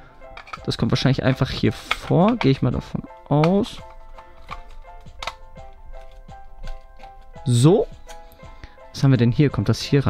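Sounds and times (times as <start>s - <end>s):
background music: 0.0s - 10.0s
hard plastic clicks and knocks: 3.4s - 7.2s.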